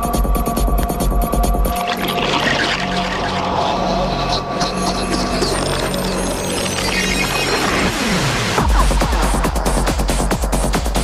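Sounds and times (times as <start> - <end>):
psychedelic trance music: 0.0 - 11.0.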